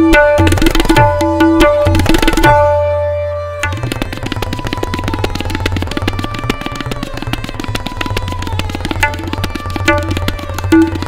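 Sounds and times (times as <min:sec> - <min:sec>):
sarangi sustained melody: 0:00.0 - 0:11.0
tabla playing fast: 0:00.0 - 0:11.0.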